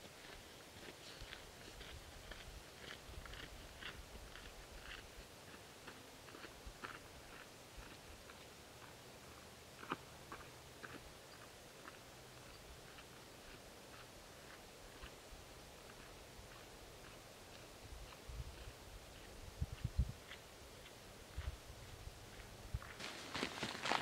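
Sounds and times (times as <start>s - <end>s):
footsteps crunching on dirt: 0.1s - 11.0s, 15.9s - 24.0s.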